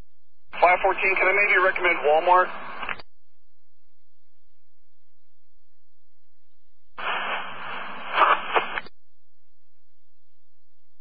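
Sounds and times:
radio crackles: 0.4s - 5.8s, 6.5s - 10.7s
radio static hiss: 0.5s - 3.1s, 6.9s - 9.0s.

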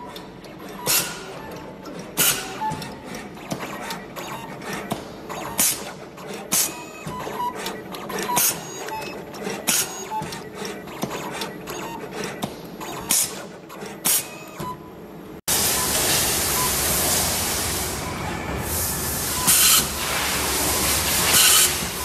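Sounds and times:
sharp machine strokes: 0.0s - 1.6s, 2.2s - 14.6s, 15.5s - 22.0s
cable stripping machine whirring: 0.0s - 22.0s.

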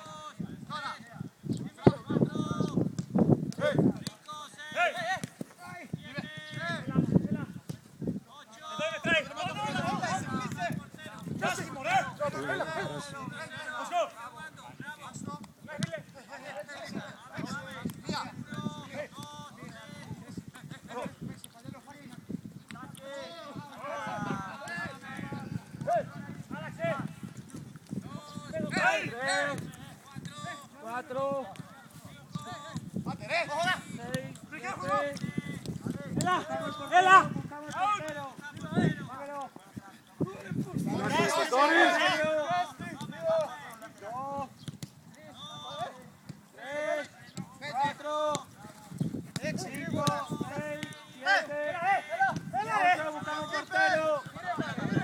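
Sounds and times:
footballers shouting calls: 0.0s - 2.9s, 3.5s - 55.0s
men shouting: 36.2s - 38.2s, 40.9s - 43.6s, 49.9s - 55.0s
ball being kicked: 48.3s - 51.0s.

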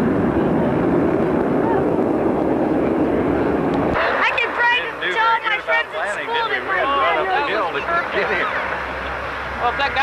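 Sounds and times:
jet engines roaring: 0.0s - 10.0s.

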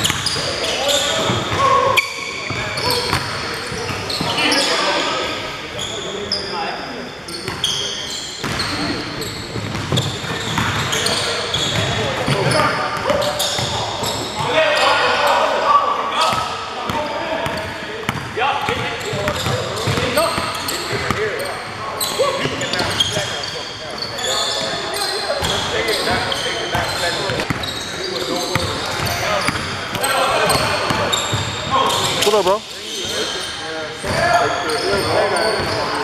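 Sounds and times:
players' voices: 0.0s - 36.0s.

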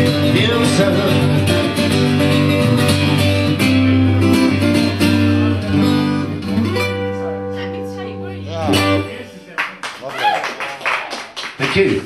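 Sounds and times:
acoustic guitar strumming: 0.0s - 9.8s.

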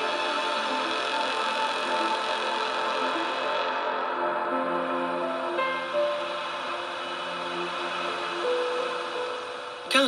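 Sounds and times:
ambient music with sustained tones: 0.0s - 10.0s.

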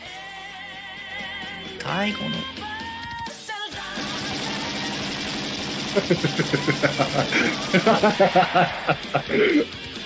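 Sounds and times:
cartoon gunshots: 4.0s - 9.0s.

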